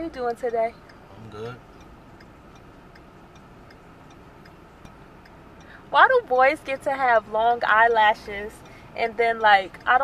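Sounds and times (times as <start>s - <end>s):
low cabin hum: 0.0s - 10.0s
turn-signal indicator ticking: 0.0s - 10.0s.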